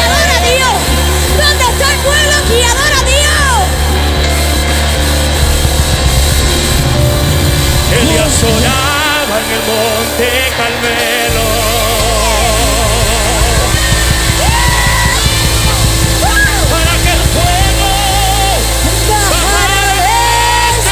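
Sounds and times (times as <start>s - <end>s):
electric bass: 0.0s - 20.9s
worship band playing: 0.0s - 20.9s
people singing: 7.8s - 20.9s.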